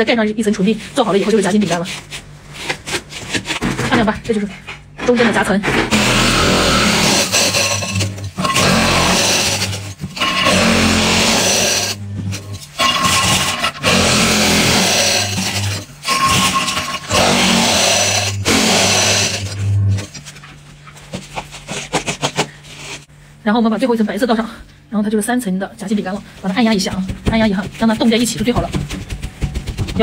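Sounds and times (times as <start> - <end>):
crushed ice scraped in metal bowl: 5.9 - 20.4.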